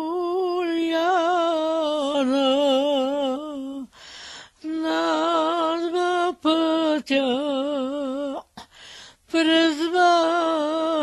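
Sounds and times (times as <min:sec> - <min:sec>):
woman singing unaccompanied: 0:00.0 - 0:04.0, 0:04.6 - 0:08.6, 0:09.3 - 0:11.0.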